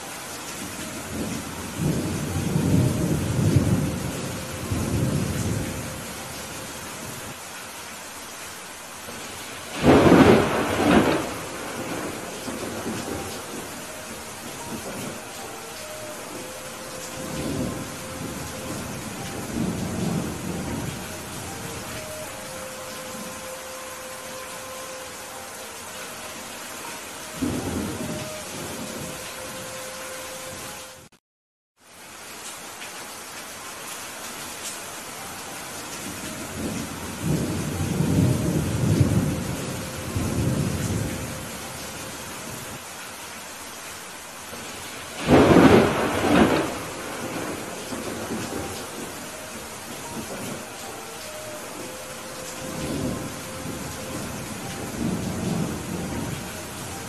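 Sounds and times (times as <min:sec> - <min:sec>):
heavy rain: 0:00.0 - 0:31.2, 0:31.8 - 0:57.0
thunder rumbling: 0:00.8 - 0:07.3, 0:09.1 - 0:24.8, 0:26.8 - 0:29.7, 0:36.0 - 0:42.7, 0:44.5 - 0:57.0
sharp thunderclap: 0:09.7 - 0:13.6, 0:45.2 - 0:49.0.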